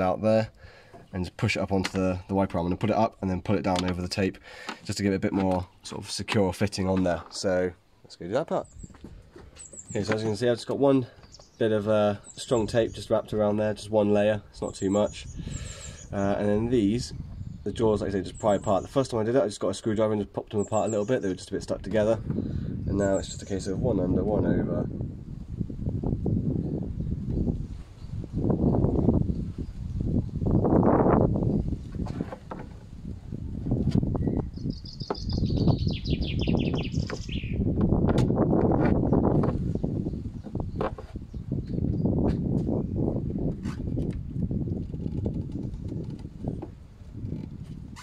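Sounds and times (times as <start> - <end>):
small bird trilling: 34.2 - 37.7.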